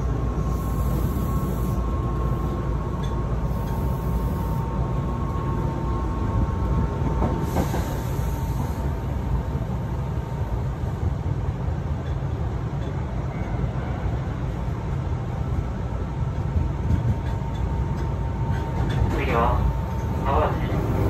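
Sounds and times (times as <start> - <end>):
train wheels rumbling on rails: 0.0 - 21.0.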